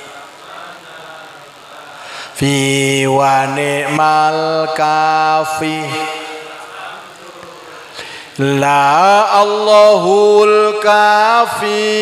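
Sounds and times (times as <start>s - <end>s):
hall echo: 0.0s - 12.0s
man chanting over microphone: 0.0s - 12.0s.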